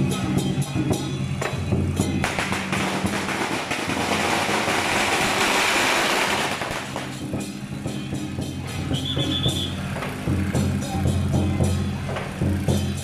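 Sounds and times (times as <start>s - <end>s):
procession percussion: 0.0s - 13.0s.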